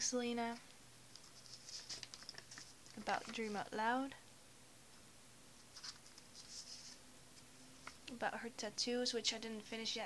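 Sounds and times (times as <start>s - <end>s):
notebook pages turning: 1.2s - 3.6s, 5.7s - 7.0s.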